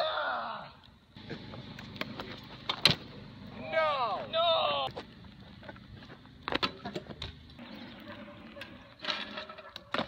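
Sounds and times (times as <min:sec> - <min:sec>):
scooter wheels clicking on asphalt: 0:01.3 - 0:10.0.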